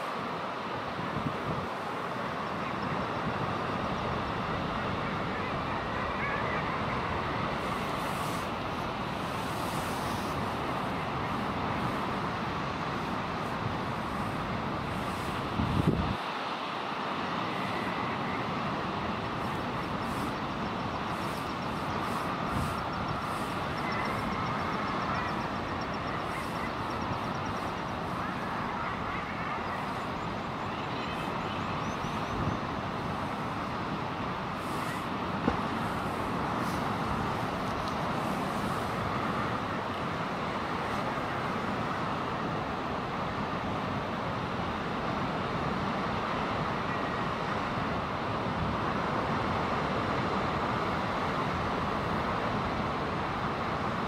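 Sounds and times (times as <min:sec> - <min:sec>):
sea noise: 0:00.0 - 0:54.0
wind: 0:00.0 - 0:54.0.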